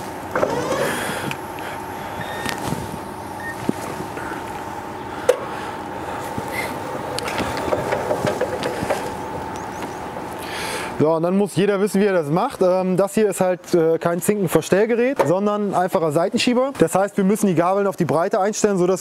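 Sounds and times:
electric drive whine: 0:00.0 - 0:12.1.

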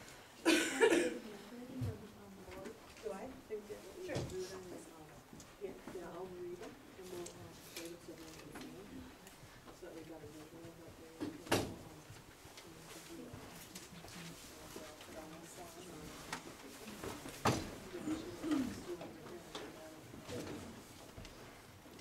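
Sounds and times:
murmur of people talking: 0:00.4 - 0:22.0.

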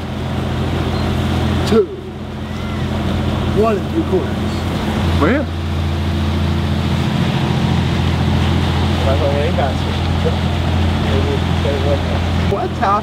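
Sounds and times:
boat diesel engine droning: 0:00.0 - 0:13.0
water noise: 0:00.0 - 0:13.0
wind: 0:00.0 - 0:13.0.

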